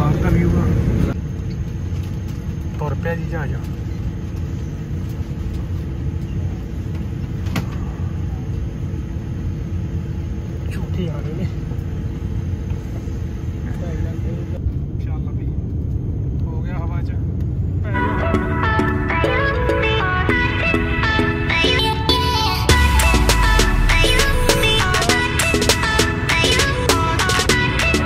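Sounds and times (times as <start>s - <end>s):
jet engine cabin rumble: 0.0s - 28.0s.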